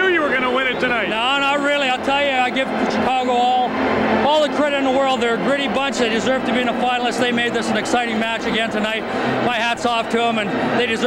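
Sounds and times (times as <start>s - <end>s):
man talking: 0.0s - 11.0s.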